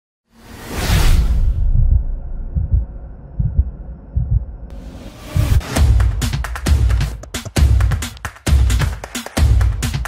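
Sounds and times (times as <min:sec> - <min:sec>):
deep bass thumps: 0:01.7 - 0:04.5
theme music: 0:04.7 - 0:10.0.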